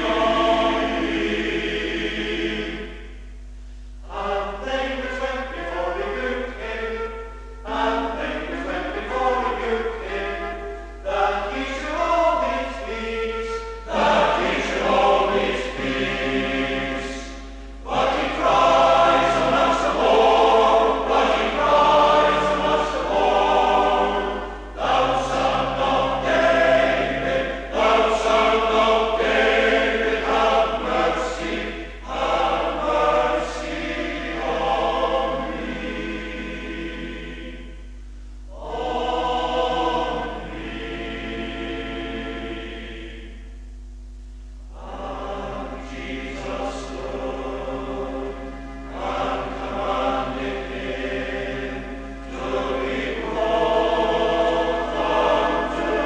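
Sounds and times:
male voice choir singing: 0.0s - 3.1s, 4.0s - 37.8s, 38.5s - 43.4s, 44.7s - 56.0s.

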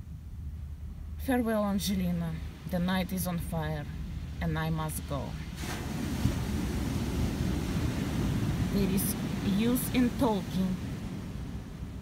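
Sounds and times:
surf washing: 1.8s - 12.0s
wind buffeting microphone: 5.4s - 12.0s.

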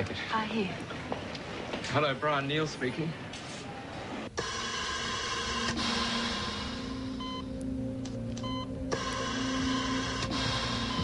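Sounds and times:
electronic hum with held tones: 5.7s - 11.0s.

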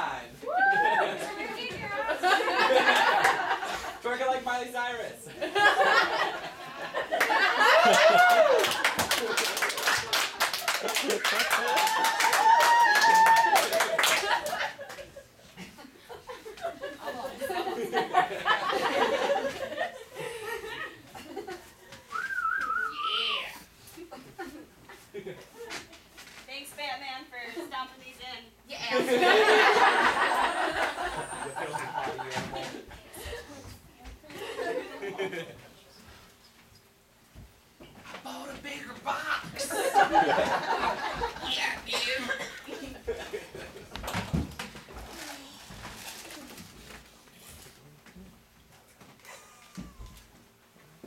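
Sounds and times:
murmur of audience room: 0.0s - 24.6s, 28.6s - 36.8s, 38.3s - 44.0s
person whistling: 22.1s - 23.4s.

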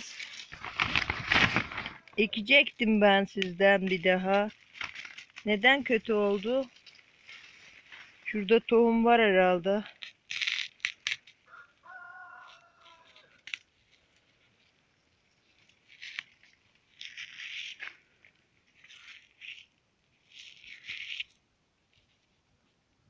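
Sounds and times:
dry seed heads crackling: 0.0s - 22.5s.

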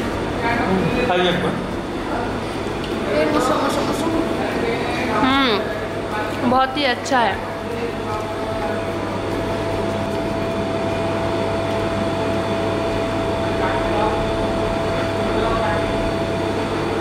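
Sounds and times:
machine hum with constant tone: 0.0s - 17.0s.

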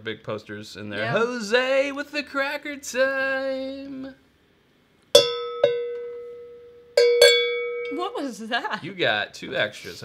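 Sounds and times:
hand bell ringing: 5.2s - 8.1s.

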